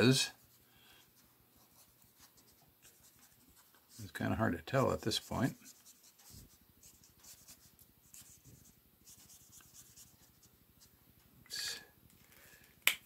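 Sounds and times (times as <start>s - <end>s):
brush pen strokes on paper: 0.3s - 10.9s.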